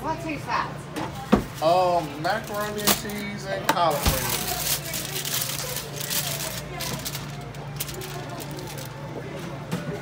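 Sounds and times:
aluminium foil crinkling: 1.6s - 9.2s.

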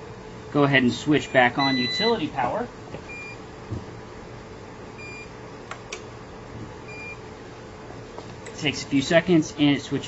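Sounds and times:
faint steady hum: 0.0s - 10.0s
short high alarm beeps: 1.3s - 2.3s.

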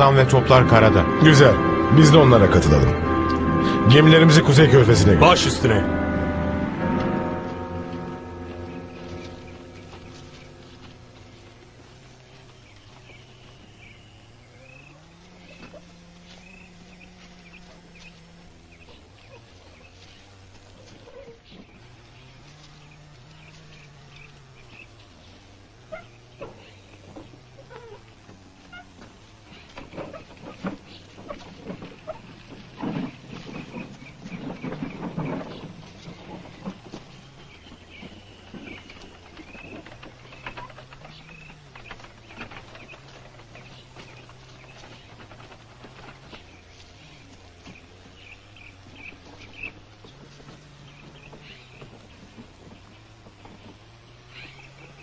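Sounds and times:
low held tone: 0.0s - 32.3s
footsteps rustling through brush: 0.0s - 55.0s.

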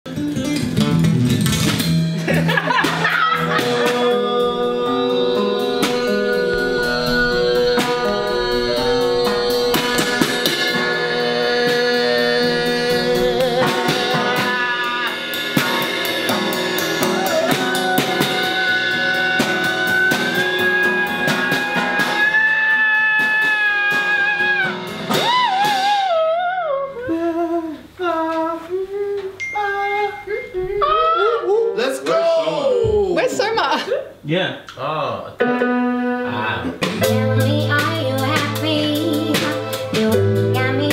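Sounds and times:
guitar chords: 0.1s - 22.4s, 35.4s - 40.9s
drum kit with cymbals: 0.1s - 26.2s, 36.8s - 40.9s.

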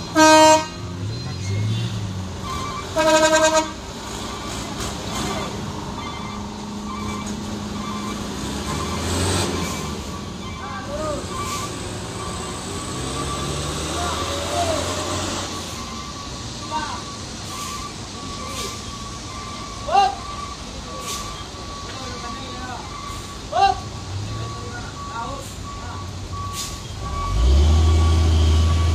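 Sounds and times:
heavy truck engine running hard: 0.0s - 28.9s
reversing beeper: 4.1s - 28.9s
men calling out: 13.8s - 15.2s, 19.5s - 21.1s, 21.8s - 24.1s
man shouting loudly: 19.9s - 20.2s, 23.5s - 23.9s.

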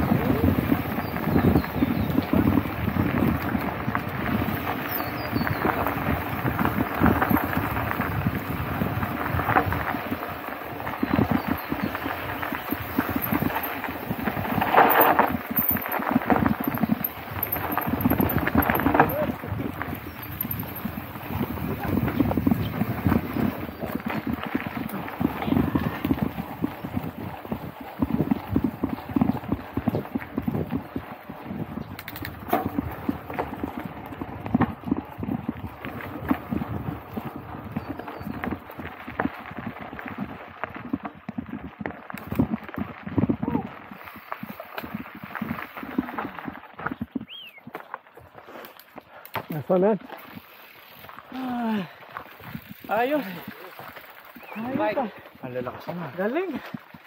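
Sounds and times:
bike knocking and rattling: 0.0s - 57.0s
bike tyres crunching over gravel: 0.0s - 57.0s.

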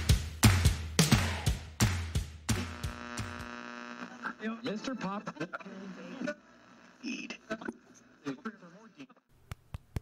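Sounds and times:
radio-like voice sounds: 3.7s - 9.2s.

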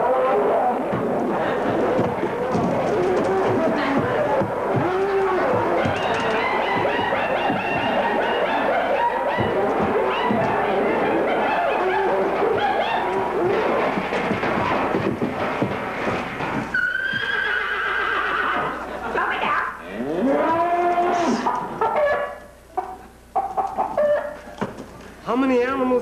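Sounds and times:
audience laughter: 1.2s - 2.2s, 18.7s - 19.7s
animal low moo: 2.4s - 8.6s, 20.0s - 21.5s
animal high drawn-out call: 16.7s - 18.7s.

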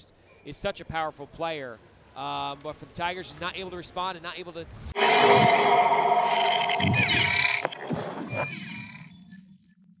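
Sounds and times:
electronic logo sting: 5.0s - 7.9s.

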